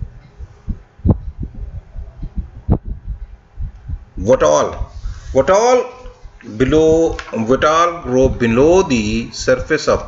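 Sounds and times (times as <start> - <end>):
low thuds: 0.0 - 4.2.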